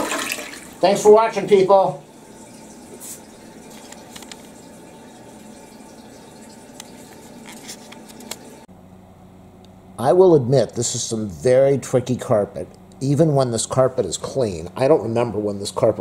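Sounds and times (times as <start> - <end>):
toilet refilling with water: 0.0 - 8.7
low steady hum: 0.0 - 16.0.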